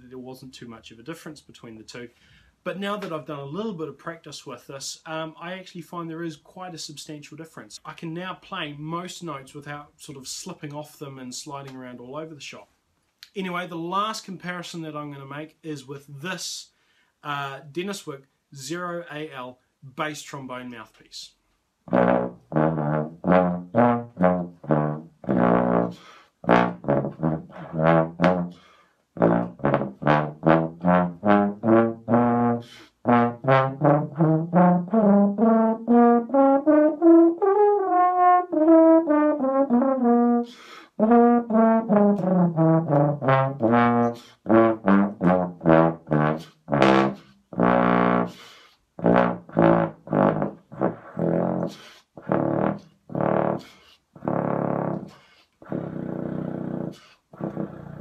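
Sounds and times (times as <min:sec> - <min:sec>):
contrabass trombone playing: 0:21.8 - 0:48.4, 0:49.0 - 0:58.0.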